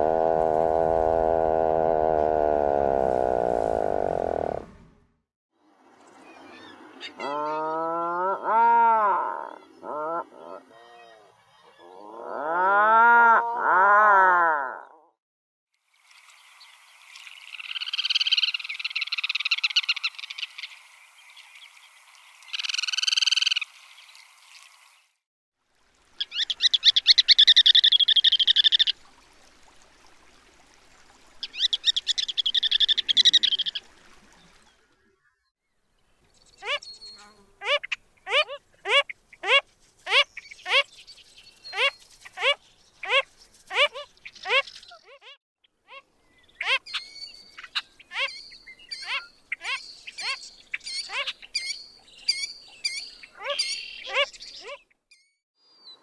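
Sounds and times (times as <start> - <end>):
phalarope downward sliding notes: 0.0 - 4.9
puffin low arching calls: 0.0 - 4.9.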